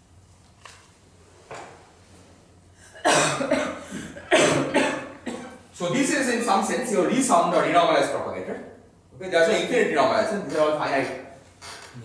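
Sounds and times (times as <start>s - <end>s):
man coughing: 2.9s - 5.7s.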